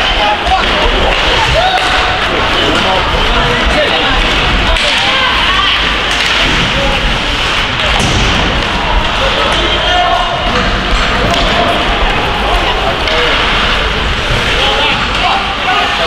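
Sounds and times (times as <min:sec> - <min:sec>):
hockey sticks and puck clacking: 0:00.0 - 0:16.0.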